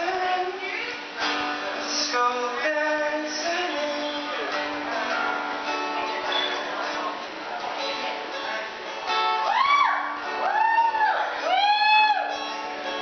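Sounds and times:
person singing: 0:00.0 - 0:01.2
acoustic guitar strumming: 0:00.0 - 0:13.0.

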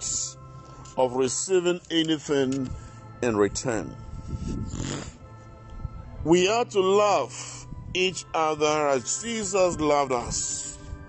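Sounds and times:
soft background music: 0:00.0 - 0:11.0
breath drawn in through nose: 0:04.2 - 0:05.4.

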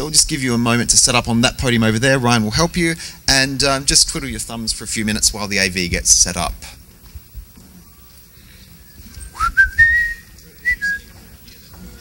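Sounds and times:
person whistling: 0:09.2 - 0:11.1.

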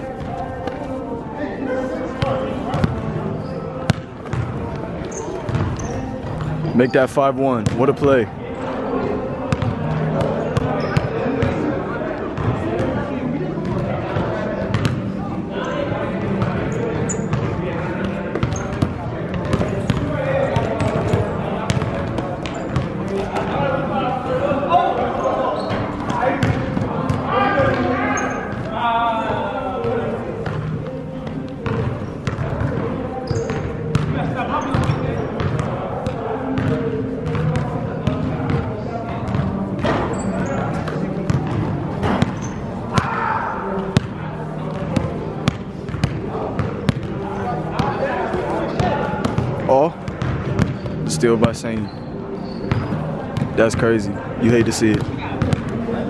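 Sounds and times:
basketball bouncing on gym floor: 0:02.2 - 0:03.0, 0:03.9 - 0:04.7, 0:05.5 - 0:06.6, 0:07.6 - 0:07.8, 0:09.5 - 0:11.6, 0:13.6 - 0:15.0, 0:17.2 - 0:23.2, 0:25.6 - 0:27.9, 0:31.6 - 0:38.6, 0:39.3 - 0:43.2, 0:44.7 - 0:47.1, 0:48.8 - 0:51.9, 0:52.6 - 0:53.6, 0:54.9 - 0:55.8.

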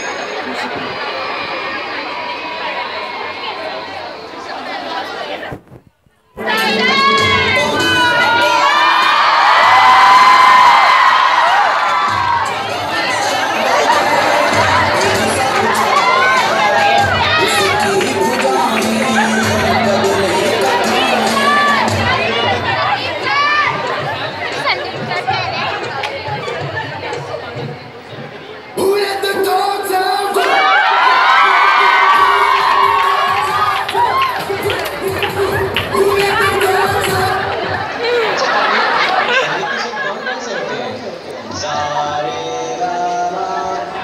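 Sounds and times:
audience shouting and cheering: 0:06.4 - 0:27.8, 0:28.7 - 0:40.6.

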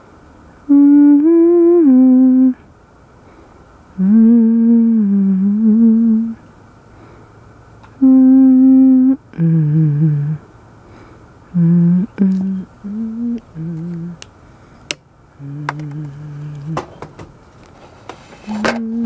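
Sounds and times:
person humming: 0:00.6 - 0:02.6, 0:04.0 - 0:06.4, 0:08.0 - 0:10.5, 0:11.5 - 0:14.3, 0:15.4 - 0:16.9, 0:18.5 - 0:19.0.

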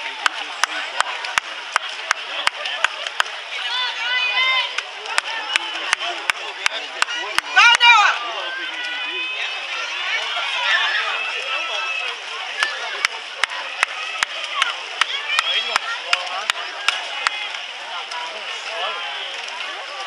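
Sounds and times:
spectators shouting and cheering: 0:00.0 - 0:20.0.

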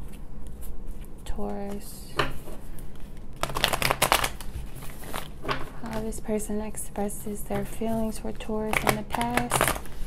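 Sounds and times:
cards being riffle-shuffled: 0:02.4 - 0:06.2.

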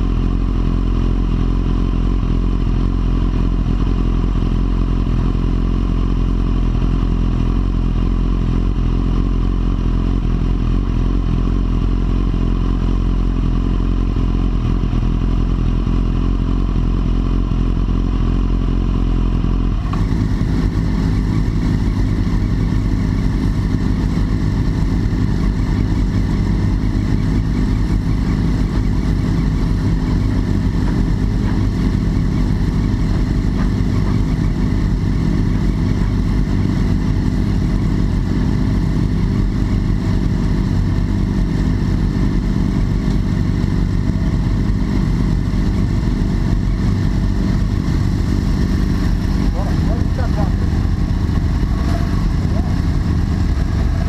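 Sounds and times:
motorcycle engine idling: 0:00.0 - 0:54.0.

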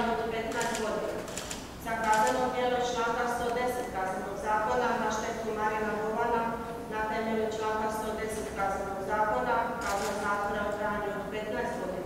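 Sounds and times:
person reading aloud: 0:00.0 - 0:12.0.

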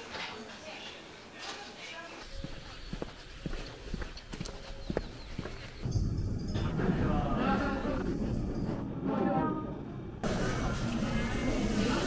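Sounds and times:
footsteps on asphalt: 0:02.1 - 0:05.8.

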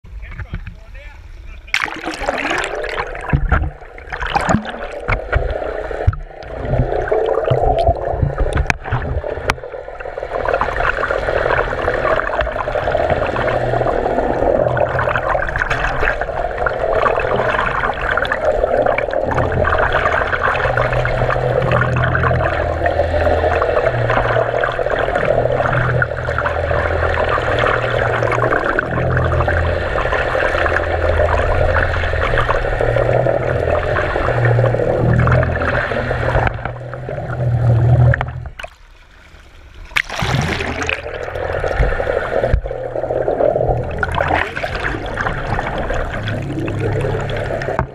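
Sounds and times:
low hum: 0:00.0 - 0:47.9
underwater rushing and gurgling: 0:01.2 - 0:47.9
splashy clicks: 0:01.7 - 0:09.7, 0:39.8 - 0:47.9.

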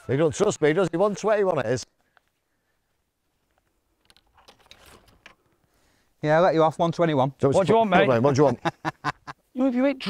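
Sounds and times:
faint soft clicks and rustling: 0:02.0 - 0:05.8.

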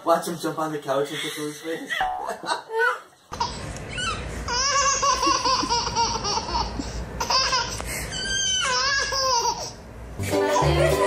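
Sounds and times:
baby giggling: 0:01.2 - 0:09.7.

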